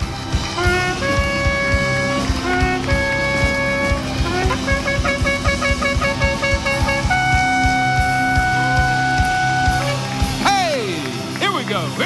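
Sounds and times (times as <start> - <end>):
shofar blasts: 0.0 - 10.5
regular drum beat: 0.0 - 11.0.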